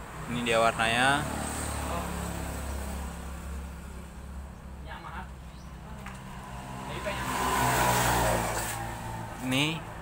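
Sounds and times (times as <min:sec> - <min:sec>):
passing vehicle engine: 0:00.0 - 0:10.0.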